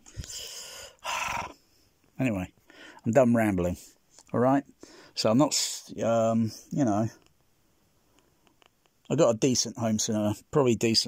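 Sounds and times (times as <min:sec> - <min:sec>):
man sighing: 0:00.1 - 0:01.6.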